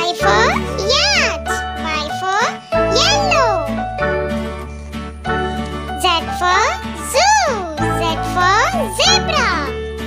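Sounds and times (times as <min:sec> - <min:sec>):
child speaking: 0:00.0 - 0:03.8, 0:06.0 - 0:09.7
children's music with bass: 0:00.0 - 0:10.0.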